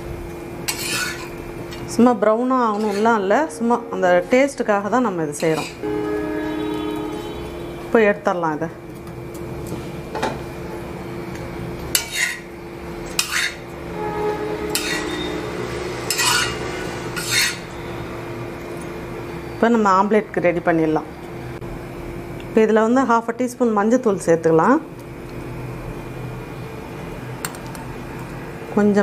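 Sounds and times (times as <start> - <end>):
steady low hum: 0.0 - 29.0
metal utensil scraping cookware: 0.7 - 1.3, 2.6 - 3.8, 5.4 - 5.8, 12.0 - 12.4, 13.1 - 13.6, 14.6 - 15.4, 16.1 - 17.7.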